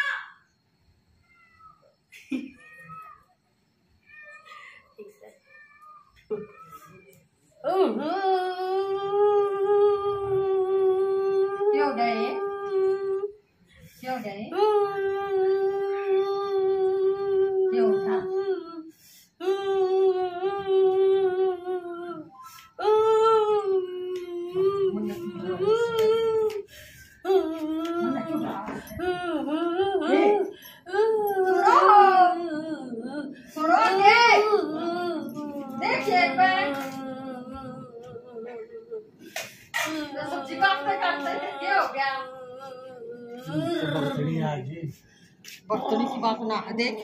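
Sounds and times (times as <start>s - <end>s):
woman singing long notes: 7.6s - 13.4s, 14.5s - 39.2s, 39.8s - 44.3s
breath: 18.9s - 19.4s, 26.7s - 27.2s, 45.0s - 45.5s.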